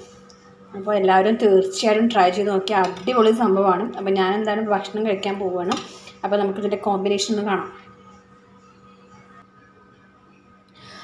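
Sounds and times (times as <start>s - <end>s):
woman talking: 0.7s - 8.2s.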